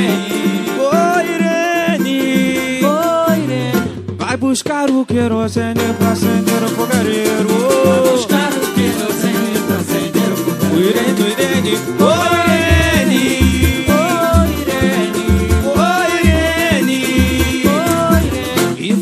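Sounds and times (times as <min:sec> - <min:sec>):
fast percussion rhythm: 0:00.0 - 0:19.0
plucked strings: 0:05.8 - 0:18.9
heavy bass notes: 0:11.9 - 0:16.8.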